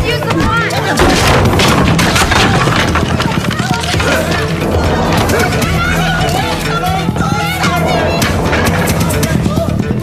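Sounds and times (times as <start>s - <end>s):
soundtrack music: 0.3s - 10.0s
crowd raised voices: 3.4s - 10.0s.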